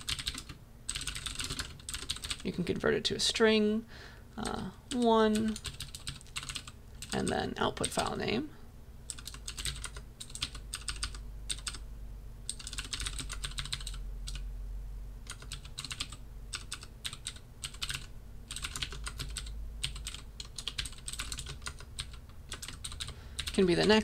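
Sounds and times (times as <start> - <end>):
computer keyboard typing: 0.0 - 2.5, 4.4 - 8.1, 9.1 - 11.8, 12.5 - 14.4, 15.2 - 23.8.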